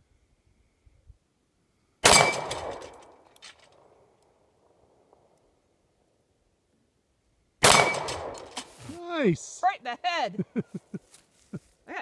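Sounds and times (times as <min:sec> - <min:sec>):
metallic ring of steel target: 0:02.0 - 0:03.1, 0:07.6 - 0:08.6
pistol shots echoing: 0:07.6 - 0:08.4.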